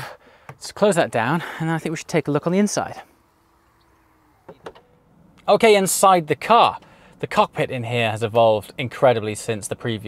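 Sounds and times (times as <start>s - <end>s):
electric tailgate motor hum: 3.2s - 5.5s.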